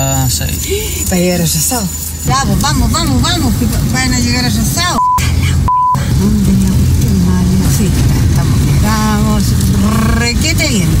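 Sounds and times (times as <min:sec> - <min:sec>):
woman talking: 0:00.0 - 0:05.1, 0:06.0 - 0:11.0
car road and engine rumble: 0:00.0 - 0:11.0
censor bleeps: 0:04.9 - 0:06.0.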